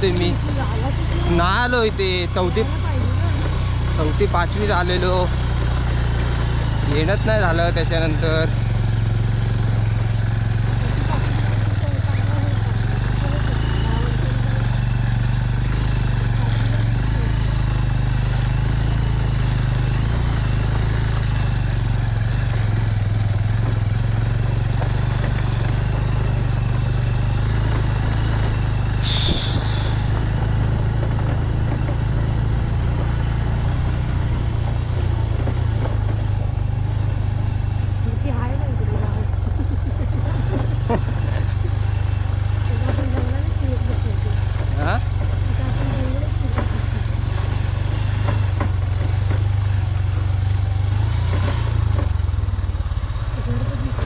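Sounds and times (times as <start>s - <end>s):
motorcycle engine running: 0.0s - 54.0s
brief hiss: 29.0s - 30.1s.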